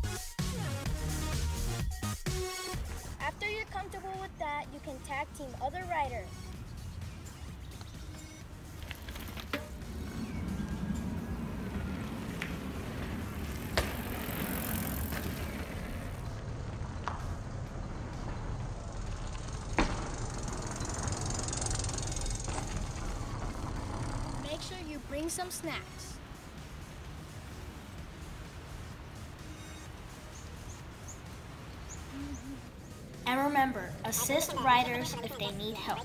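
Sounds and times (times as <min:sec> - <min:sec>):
mountain bikes on dirt trail: 0:02.7 - 0:36.0.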